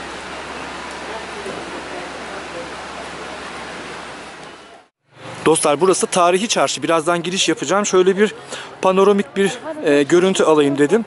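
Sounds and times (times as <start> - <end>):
rain falling: 0.0 - 4.9.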